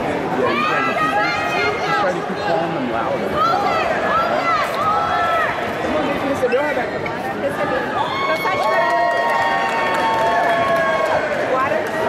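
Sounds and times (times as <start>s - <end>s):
people calling out and chattering: 0.0s - 12.0s.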